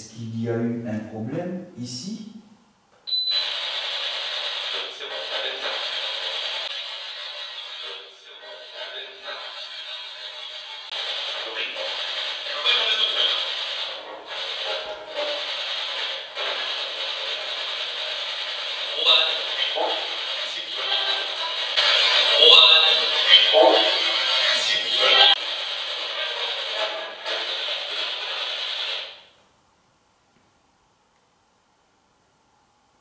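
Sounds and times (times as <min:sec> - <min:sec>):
crackling static hiss: 0:10.6 - 0:33.0.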